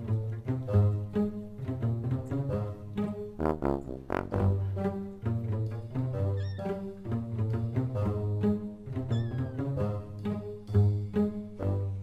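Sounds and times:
kitten meowing: 6.4 - 6.7.

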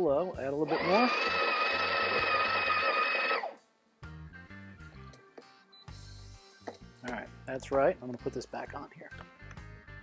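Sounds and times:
burr grinder whining: 0.7 - 3.6.

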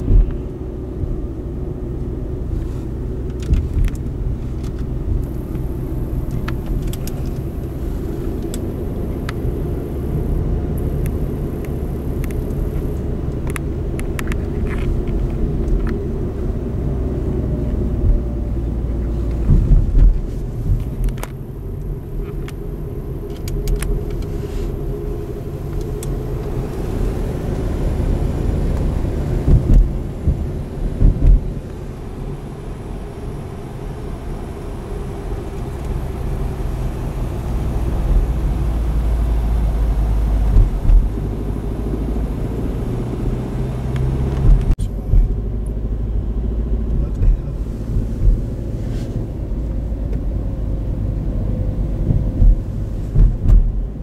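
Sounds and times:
low thumps: 0.0 - 1.2, 17.3 - 22.9, 28.8 - 31.7, 40.3 - 41.5, 44.2 - 45.8, 46.8 - 50.2, 51.4 - 54.0
car engine and road noise: 0.0 - 54.0.

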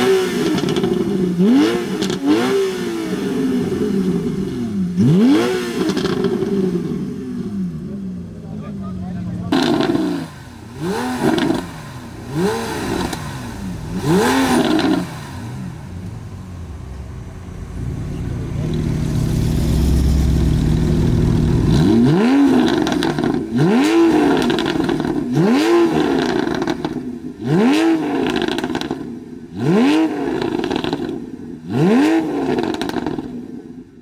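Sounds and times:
car engine revving: 0.0 - 33.9.

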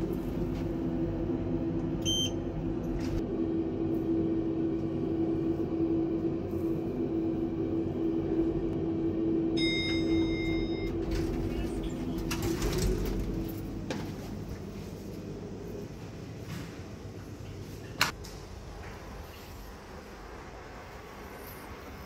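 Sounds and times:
lift car humming: 0.0 - 17.6
short electronic beep: 2.0 - 2.4, 9.6 - 11.0
ringing arrival chime: 9.6 - 11.0.

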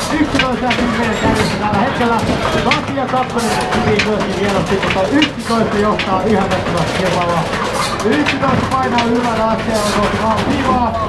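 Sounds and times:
excited race commentary: 0.0 - 11.0.

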